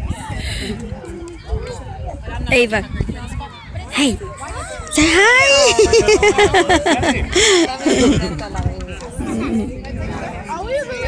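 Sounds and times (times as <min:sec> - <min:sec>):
indistinct voices chattering: 0:00.0 - 0:11.0
wind on microphone: 0:00.0 - 0:11.0.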